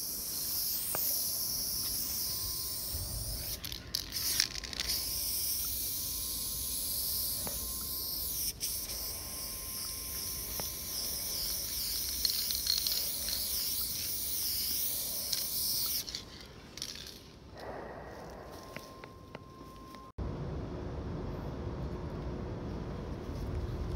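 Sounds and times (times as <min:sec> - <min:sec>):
spray paint can hissing: 0:00.0 - 0:17.4.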